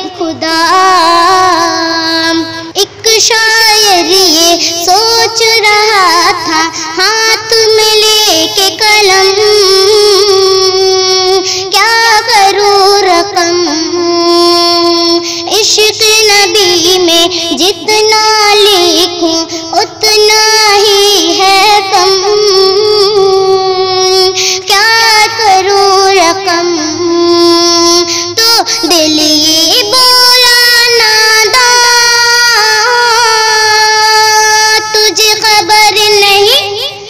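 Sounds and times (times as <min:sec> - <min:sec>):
child-like voice singing: 0:00.0 - 0:37.0.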